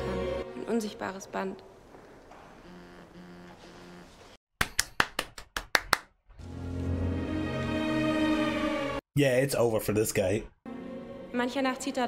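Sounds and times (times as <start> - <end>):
person clapping hands: 4.6 - 6.2.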